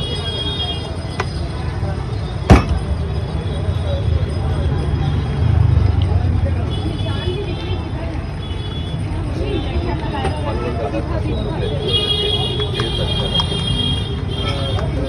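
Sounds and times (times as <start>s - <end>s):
traffic rumble: 0.0s - 15.0s
car horns: 2.4s - 3.7s, 11.7s - 15.0s.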